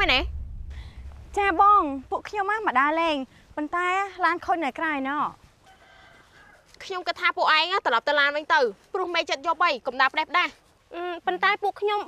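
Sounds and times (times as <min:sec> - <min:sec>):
woman speaking: 0:00.0 - 0:00.3, 0:01.3 - 0:05.4, 0:06.8 - 0:12.0.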